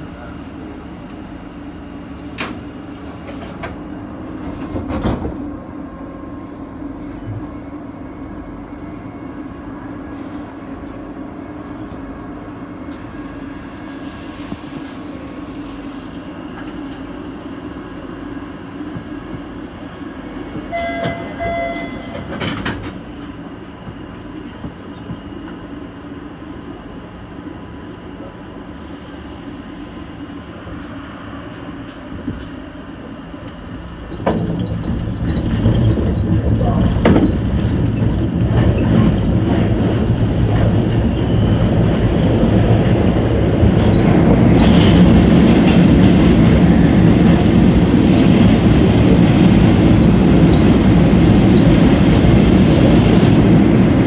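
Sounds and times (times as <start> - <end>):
subway train humming: 0.0 - 54.0
short beeps: 20.7 - 22.1.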